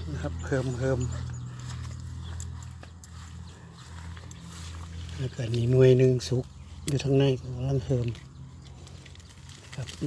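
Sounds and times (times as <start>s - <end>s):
grass and leaves rustling: 0.0s - 10.0s
steady low hum: 0.0s - 10.0s.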